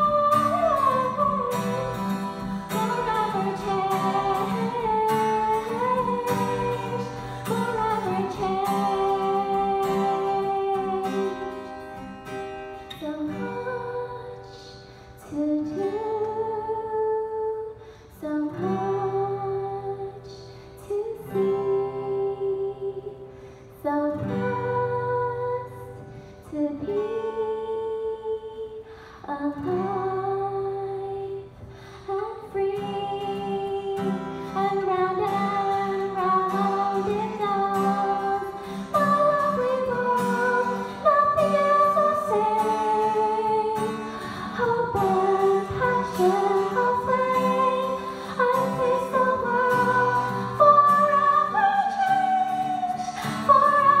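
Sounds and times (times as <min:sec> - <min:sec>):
strummed acoustic guitar: 0:00.0 - 0:54.0
woman singing: 0:00.0 - 0:54.0.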